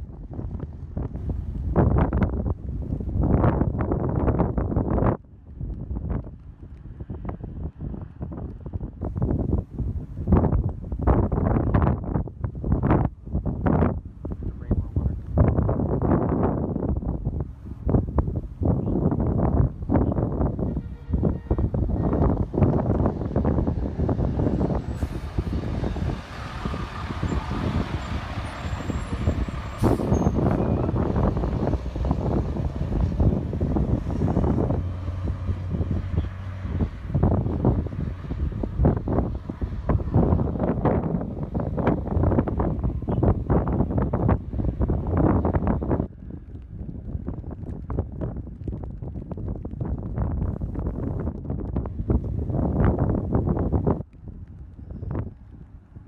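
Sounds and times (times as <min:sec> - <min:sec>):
wind buffeting microphone: 0:00.0 - 0:56.0
truck engine passing: 0:21.2 - 0:45.4.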